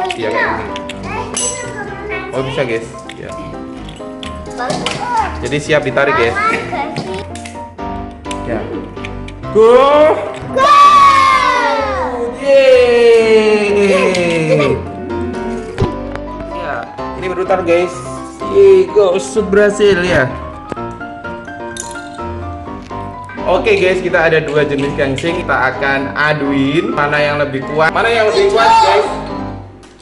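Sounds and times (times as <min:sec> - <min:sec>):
background music with held notes: 0:00.0 - 0:30.0.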